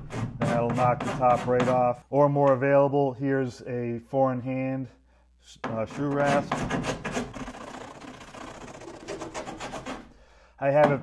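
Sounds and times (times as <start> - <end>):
rasp filing hardened epoxy: 0.0 - 1.9, 5.6 - 10.1.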